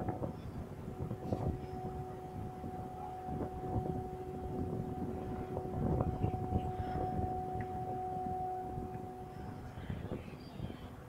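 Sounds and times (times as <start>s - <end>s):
low engine rumble: 0.0s - 11.0s
steady mid-pitched tone: 0.0s - 11.0s.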